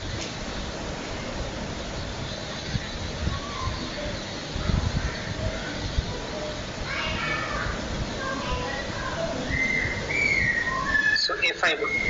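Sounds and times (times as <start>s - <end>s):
faint distant voices: 0.0s - 12.0s
steady background noise: 0.0s - 12.0s.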